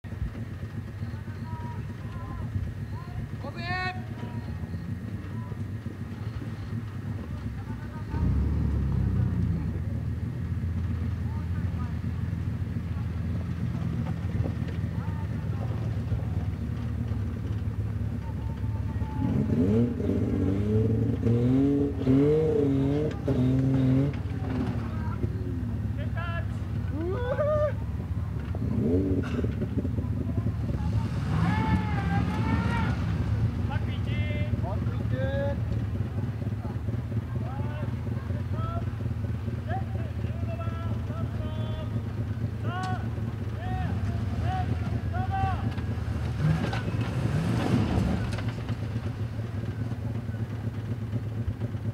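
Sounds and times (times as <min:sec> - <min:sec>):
truck engine running under load: 0:00.0 - 0:51.9.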